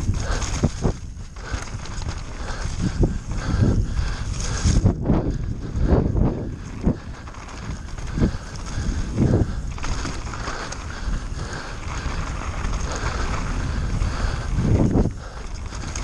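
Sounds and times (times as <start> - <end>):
bike thumping over bumps: 0.0 - 16.0
bike tyres rumbling over dirt: 0.0 - 16.0
wind on microphone: 0.0 - 16.0.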